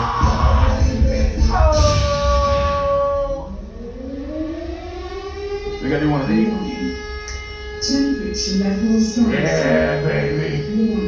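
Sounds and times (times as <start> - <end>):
voices: 0.0 - 3.6, 5.8 - 7.0, 7.8 - 11.0
siren-like wail: 1.4 - 11.0.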